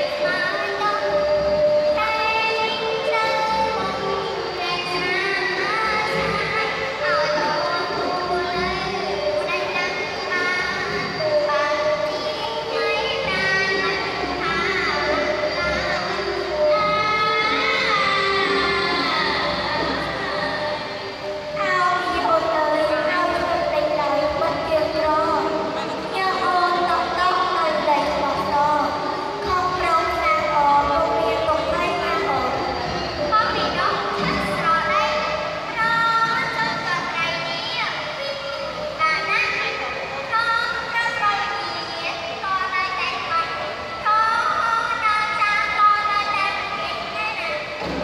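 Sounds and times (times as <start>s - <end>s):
person singing through microphone: 0.0s - 37.4s.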